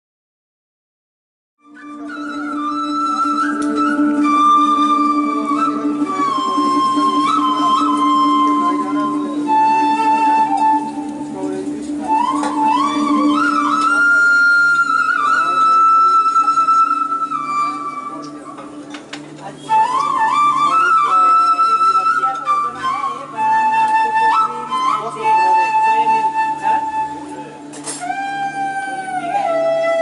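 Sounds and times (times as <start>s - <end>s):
solo flute melody: 1.6s - 30.0s.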